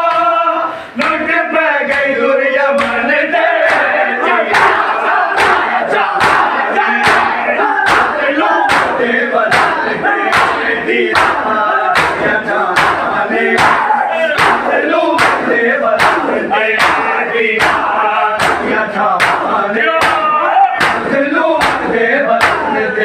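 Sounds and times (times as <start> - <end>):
men chanting and calling out: 0.0 - 23.0
men slapping chests in unison: 0.0 - 23.0.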